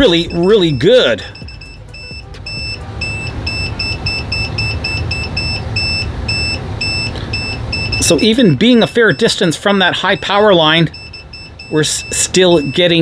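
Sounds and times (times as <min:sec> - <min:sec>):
low steady hum: 0:00.0 - 0:12.8
meter short high beeps: 0:00.0 - 0:13.0.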